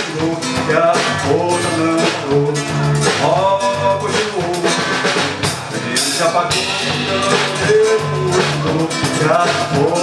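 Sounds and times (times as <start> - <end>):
electric bass line: 0.0 - 10.0
person singing: 0.0 - 10.0
strummed acoustic guitar: 0.0 - 10.0.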